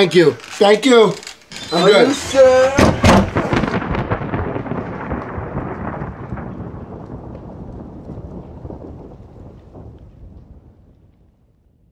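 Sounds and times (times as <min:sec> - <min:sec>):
crackling rumble: 0:00.0 - 0:11.9.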